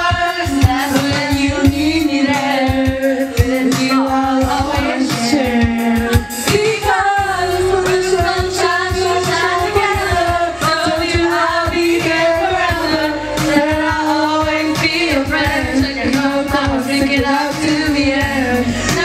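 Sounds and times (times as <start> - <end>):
people singing into microphones: 0.0 - 19.0
pop backing track with beat: 0.0 - 19.0.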